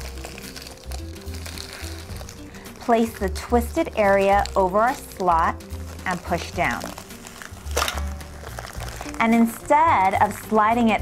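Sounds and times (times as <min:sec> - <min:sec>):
background music: 0:00.0 - 0:11.0
bag pushed into tape sealer: 0:05.8 - 0:09.4.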